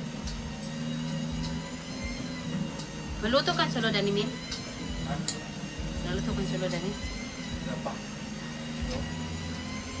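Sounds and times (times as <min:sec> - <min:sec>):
electric rotisserie motor hum: 0:00.0 - 0:10.0.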